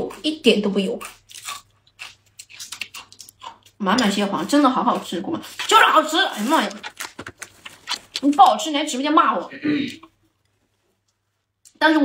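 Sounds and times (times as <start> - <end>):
crunchy food being chewed: 0.0 - 4.6.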